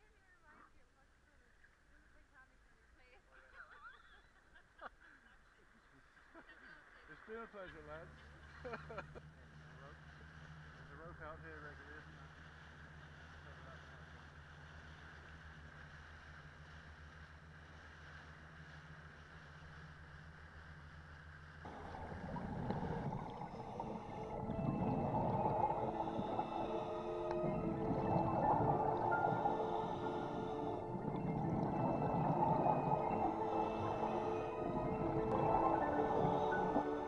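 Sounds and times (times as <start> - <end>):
wind: 0.0 - 23.7
boat engine humming: 7.3 - 37.0
water noise: 9.2 - 37.0
background music sustained notes: 21.7 - 37.0.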